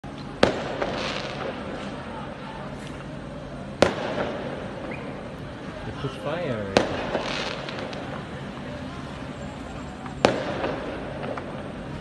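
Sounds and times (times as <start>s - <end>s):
street background noise: 0.0s - 12.0s
loud sharp bang with echo: 3.8s - 5.1s, 6.7s - 8.0s, 10.2s - 11.6s.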